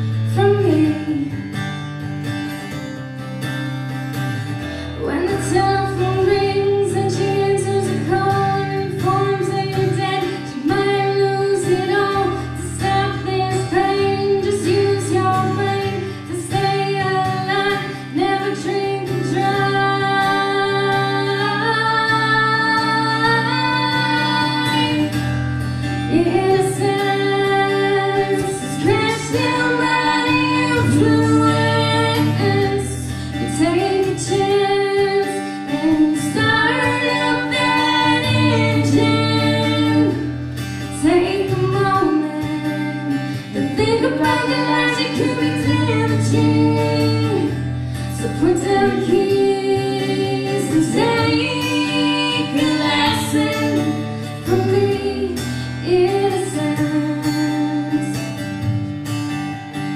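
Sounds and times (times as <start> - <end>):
acoustic guitar: 0.0 - 59.9
woman singing country song: 0.0 - 59.9.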